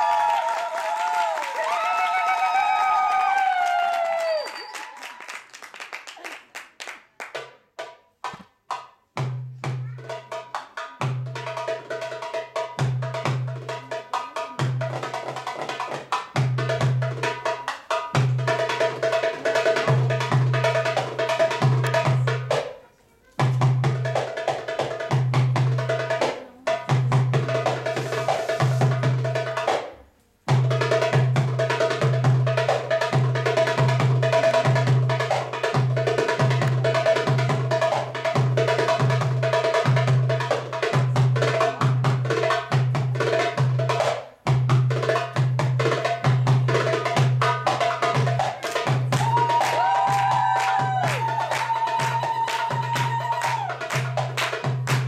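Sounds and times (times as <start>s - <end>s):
goblet drum solo: 7.8s - 22.8s, 23.4s - 29.9s, 30.5s - 55.0s.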